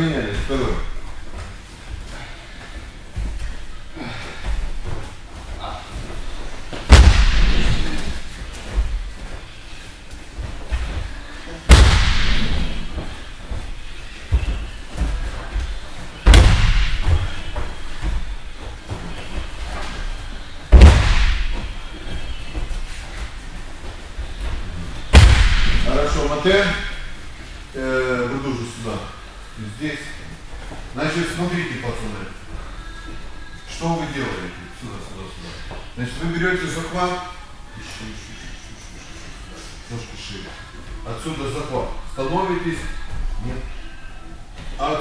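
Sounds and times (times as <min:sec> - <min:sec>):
body thudding onto padded mat: 0:06.8 - 0:09.1, 0:11.7 - 0:19.3.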